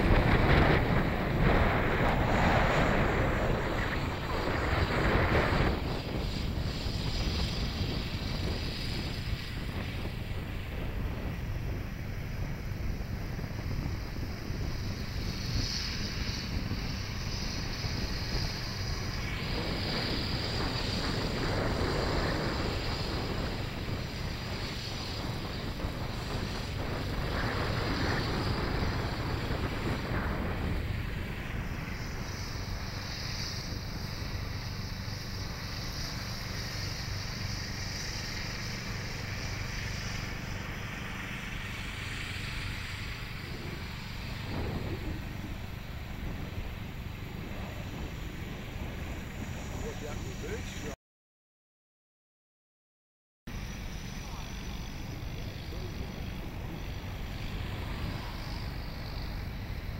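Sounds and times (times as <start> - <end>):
model plane motor whine: 0.0 - 51.0, 53.5 - 59.9
wind noise on microphone: 0.0 - 51.0, 53.5 - 59.9.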